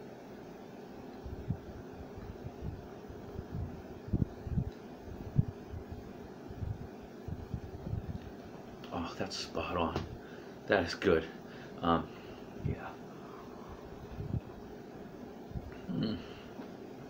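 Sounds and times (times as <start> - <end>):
room hum: 0.0 - 17.0.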